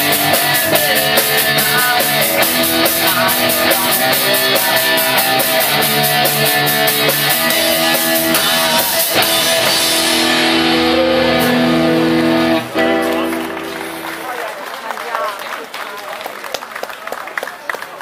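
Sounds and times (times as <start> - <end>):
sustained guitar chords: 0.0 - 14.4
live rock band playing: 0.0 - 14.6.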